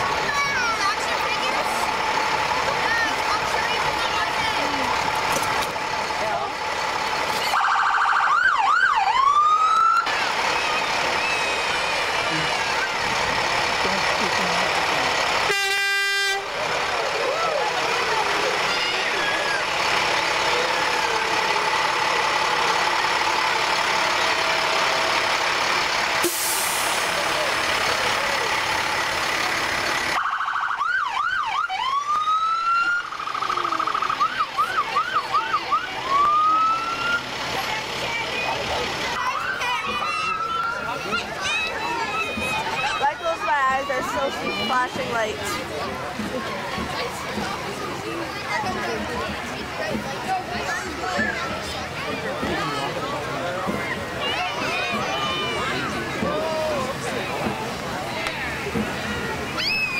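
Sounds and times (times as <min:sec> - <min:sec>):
fire engine sirens whooping: 0:00.0 - 0:44.9, 0:54.0 - 0:59.9
fire engine horn blast: 0:15.4 - 0:16.6, 0:26.2 - 0:27.2.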